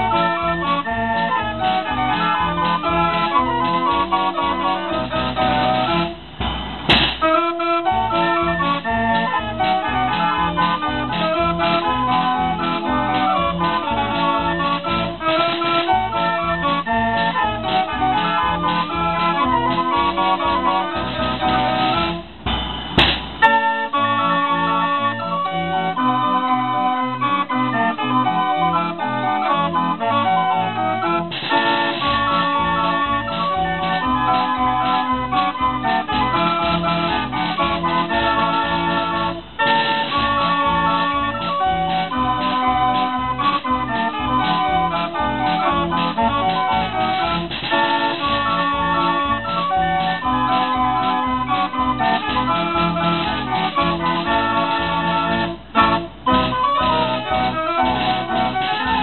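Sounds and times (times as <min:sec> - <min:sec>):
low beat: 0:00.0 - 0:26.9, 0:28.1 - 0:59.0
band organ playing tune: 0:00.0 - 0:59.0
sharp crash: 0:06.4 - 0:07.4, 0:22.4 - 0:23.5.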